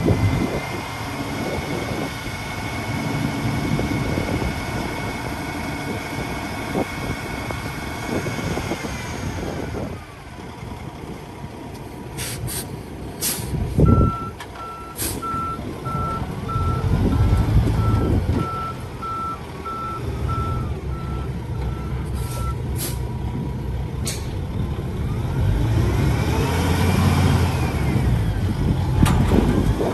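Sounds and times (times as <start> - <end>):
diesel engine rumble: 0.0 - 29.9
truck backup alarm beeping: 13.8 - 23.0.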